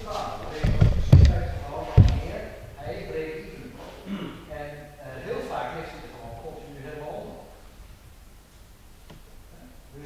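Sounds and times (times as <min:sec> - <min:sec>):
dull low thumps: 0:00.0 - 0:02.9
sharp thump: 0:00.6 - 0:02.4.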